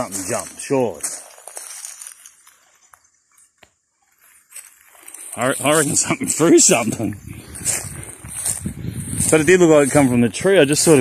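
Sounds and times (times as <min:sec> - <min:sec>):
footsteps on dry leaves: 0:00.0 - 0:11.0.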